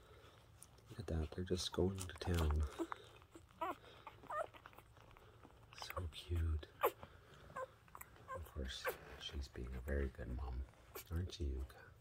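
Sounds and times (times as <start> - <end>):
puppy squeaking: 2.6 - 9.2.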